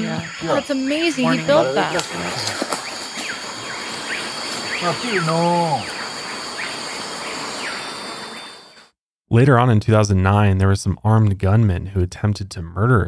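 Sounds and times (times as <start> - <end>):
high insect drone: 0.0 - 8.8
man speaking: 0.4 - 2.6, 4.8 - 5.9, 9.3 - 13.0.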